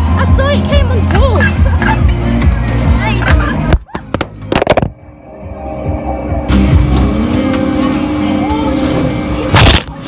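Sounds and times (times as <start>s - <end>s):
fairground music: 0.0s - 9.5s
fairground din: 0.0s - 10.0s
machine hum: 4.4s - 9.9s.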